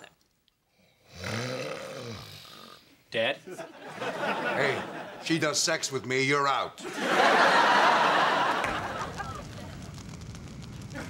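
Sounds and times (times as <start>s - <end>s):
audience ooh: 6.8s - 11.0s.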